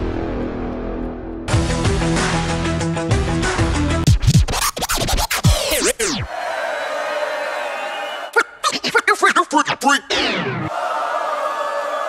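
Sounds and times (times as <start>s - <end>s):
record scratching: 4.0s - 6.3s, 8.6s - 10.7s.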